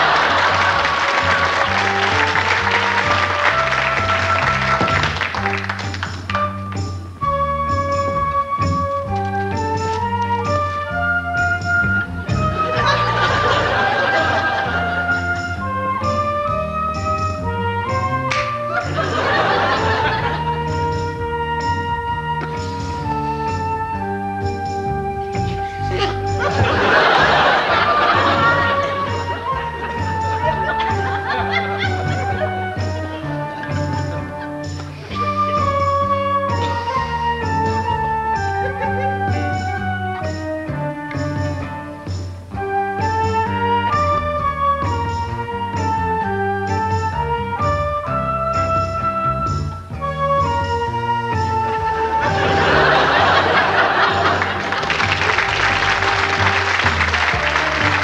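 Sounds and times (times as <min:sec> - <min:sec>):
audience applause: 0:00.0 - 0:06.4, 0:12.6 - 0:15.1, 0:26.4 - 0:32.5, 0:52.2 - 0:58.0
backing music with bass line: 0:00.0 - 0:58.0.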